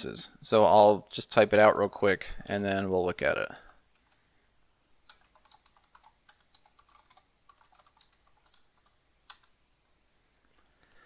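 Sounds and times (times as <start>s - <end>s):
computer keyboard typing: 3.9s - 4.2s, 5.0s - 9.6s.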